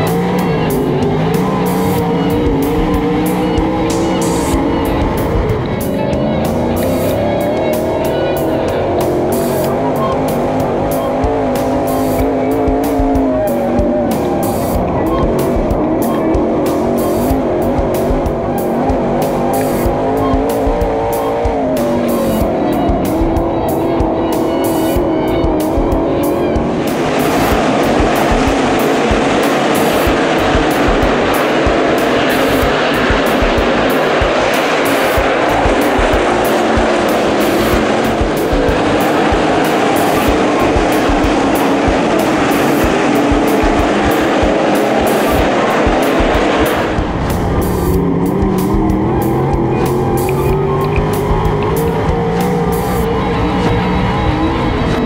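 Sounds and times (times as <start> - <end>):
music: 0.0 - 55.0
race car engine revving: 0.0 - 55.0
roar of racing cars: 0.0 - 55.0.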